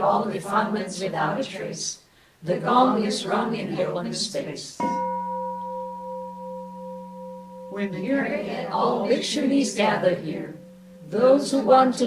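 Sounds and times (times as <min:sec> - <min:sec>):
bowl gong ringing: 0:04.8 - 0:12.0.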